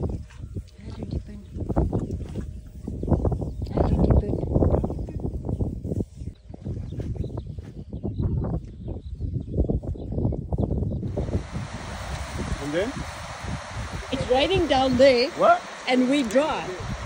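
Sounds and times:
wind buffeting microphone: 0:00.0 - 0:17.0
rain hissing: 0:11.1 - 0:17.0.

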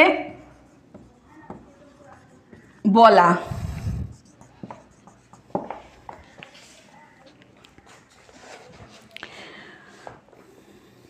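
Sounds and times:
scratching and tapping on paper: 0:00.3 - 0:02.9, 0:03.6 - 0:09.2.

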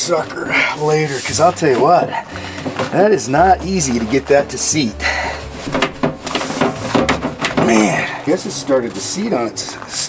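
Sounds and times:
sheet metal clicks and scrapes: 0:05.7 - 0:07.7.

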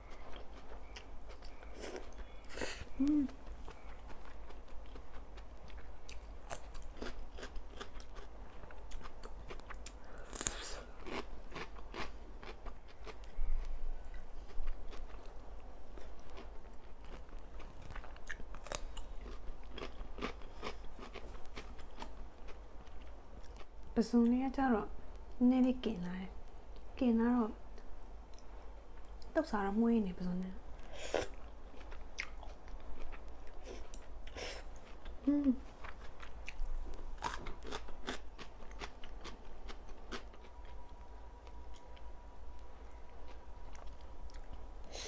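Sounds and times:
crunchy biting and chewing: 0:03.6 - 0:13.7, 0:16.0 - 0:23.6, 0:35.8 - 0:40.9.

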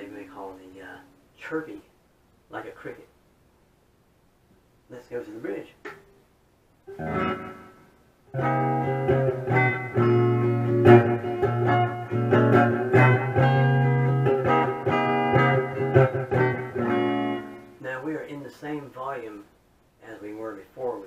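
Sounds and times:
electric guitar through amplifier: 0:06.9 - 0:17.8.

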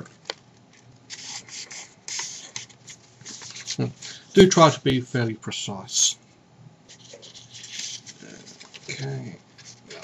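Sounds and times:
paper folding and creasing: 0:01.1 - 0:03.9, 0:06.9 - 0:10.0.

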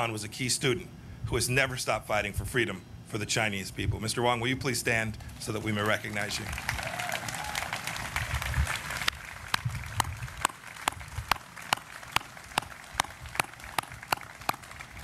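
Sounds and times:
audience applause: 0:05.8 - 0:15.0
person clapping loudly: 0:06.1 - 0:15.0.

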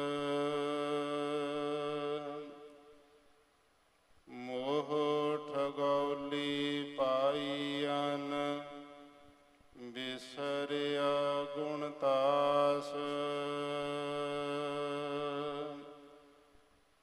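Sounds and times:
person chanting melodically: 0:00.0 - 0:03.0, 0:04.3 - 0:09.2, 0:09.8 - 0:16.4.

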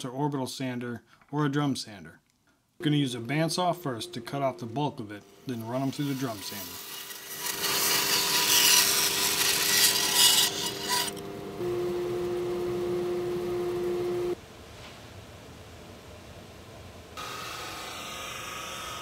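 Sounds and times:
machine hum: 0:02.8 - 0:14.4
bandsaw cutting wood: 0:03.6 - 0:14.4.

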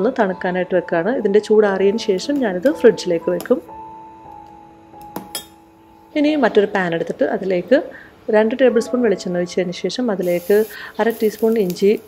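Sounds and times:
woman speaking: 0:00.0 - 0:03.7, 0:06.2 - 0:12.0.

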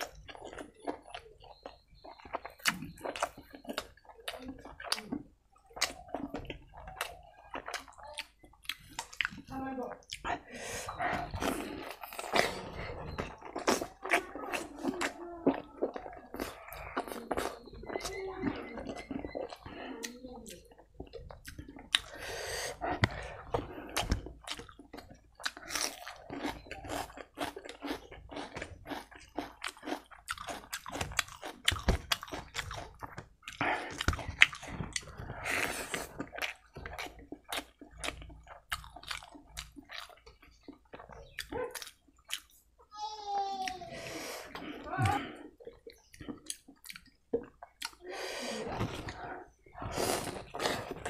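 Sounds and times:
wet chewing: 0:00.0 - 0:42.8, 0:43.6 - 0:51.0
wet slurping: 0:47.8 - 0:51.0.

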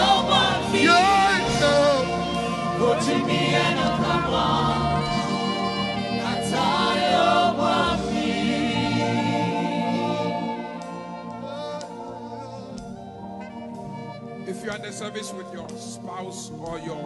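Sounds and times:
choir singing gospel song: 0:00.0 - 0:17.0
sustained accompaniment: 0:00.0 - 0:17.0.

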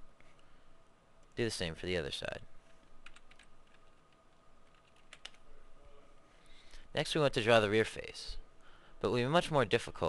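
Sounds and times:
faint keyboard typing: 0:02.6 - 0:05.4.

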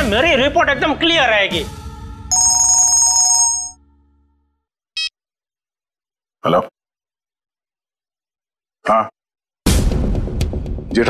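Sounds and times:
phone ringtone electronic trill: 0:02.3 - 0:03.8.

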